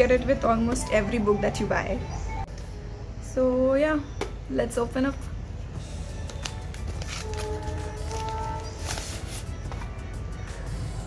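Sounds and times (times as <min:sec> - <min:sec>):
background music: 0:00.0 - 0:03.7, 0:04.6 - 0:11.0
paper wrapping tearing: 0:06.3 - 0:09.6.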